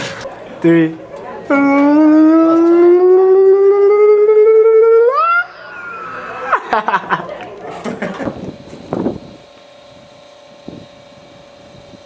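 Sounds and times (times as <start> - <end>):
young man holding vocal aah: 1.4 - 6.7.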